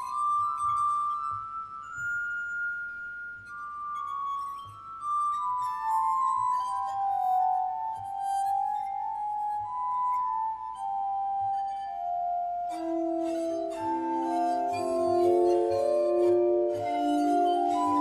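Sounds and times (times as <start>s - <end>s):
glass harmonica melody: 0.0s - 18.0s.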